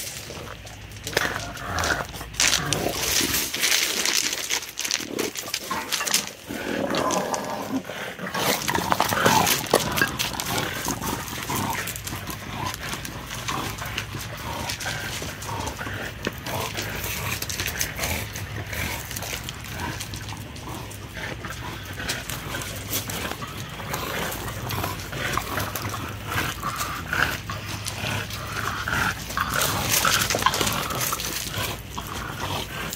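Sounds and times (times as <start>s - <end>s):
dogs vocalizing: 0.0s - 32.9s
paws crunching on gravel: 0.0s - 32.9s.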